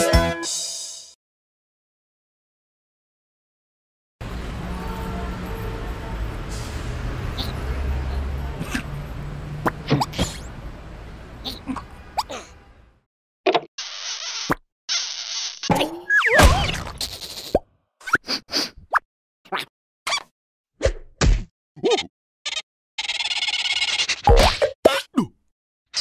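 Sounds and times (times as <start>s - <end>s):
squeaky cartoon vocal noises: 7.3s - 7.7s, 11.4s - 12.6s, 13.8s - 18.3s, 21.8s - 25.2s.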